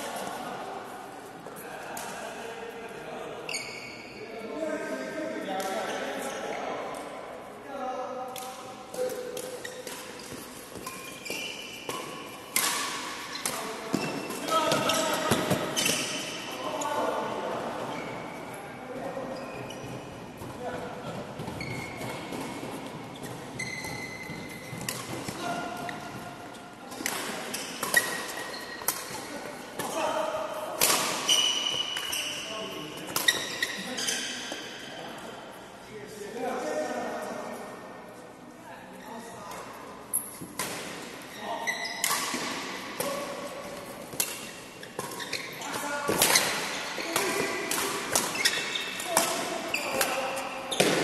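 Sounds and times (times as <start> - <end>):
badminton racket hitting shuttlecock: 42.0 - 51.0.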